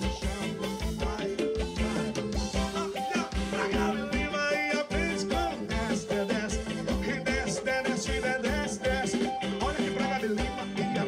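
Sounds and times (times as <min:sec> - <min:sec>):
live band music: 0:00.0 - 0:11.0
steady drum beat: 0:00.0 - 0:11.0.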